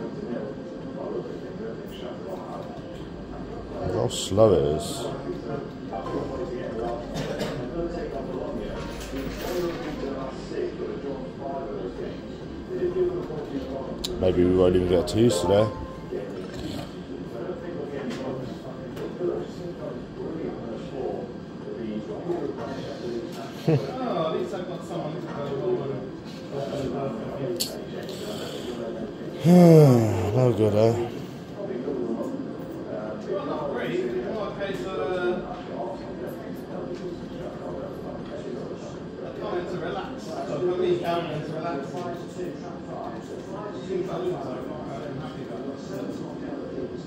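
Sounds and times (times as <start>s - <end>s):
indistinct background voices: 27.6s - 31.5s.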